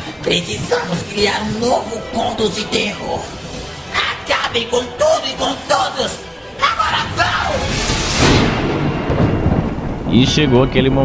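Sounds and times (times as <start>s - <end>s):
thunderclap crash and rumble: 7.3s - 11.0s.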